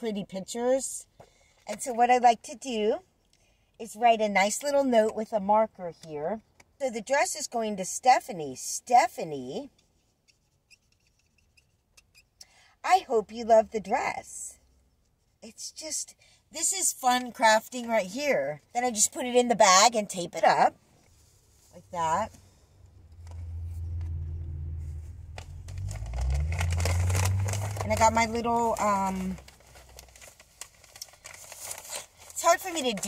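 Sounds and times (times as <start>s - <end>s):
marker squeaking on paper: 10.6s - 12.3s
steady low rumble: 21.8s - 31.0s
plastic and paper mailer crinkling: 25.0s - 33.0s.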